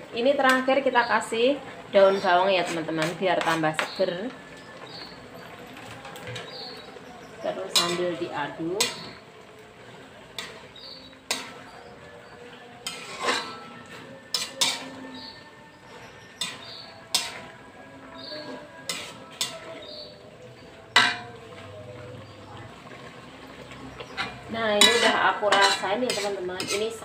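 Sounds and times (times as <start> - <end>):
metal spatula scraping wok: 0.2 - 27.0.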